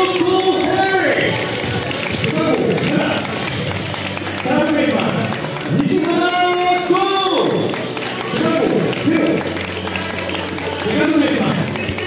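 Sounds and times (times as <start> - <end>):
crowd noise: 0.0 - 12.0
voices calling out long notes: 0.0 - 12.0.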